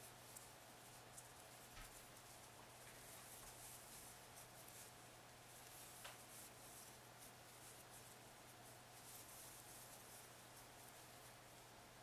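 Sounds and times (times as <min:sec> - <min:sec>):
low steady hum: 0:00.0 - 0:12.0
yarn scratching and rustling: 0:00.0 - 0:12.0.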